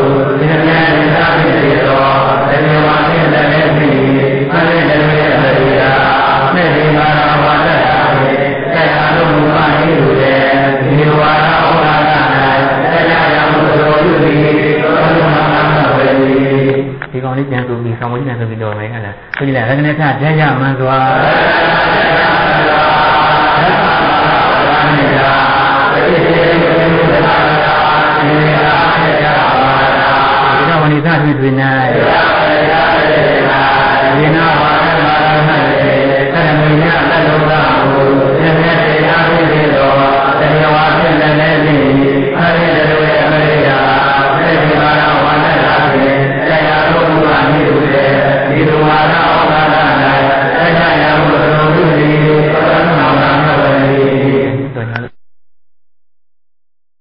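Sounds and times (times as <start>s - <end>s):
low monotone chanting: 0.0s - 55.1s.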